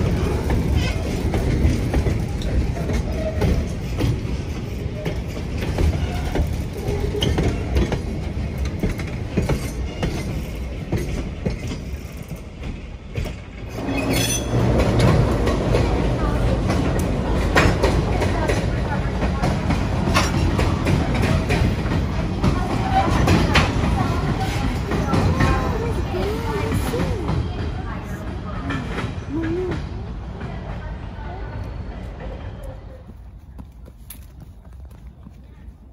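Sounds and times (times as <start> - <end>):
wheels clacking over rail joints: 0.0 - 32.8
train cars rumbling past: 0.0 - 35.9.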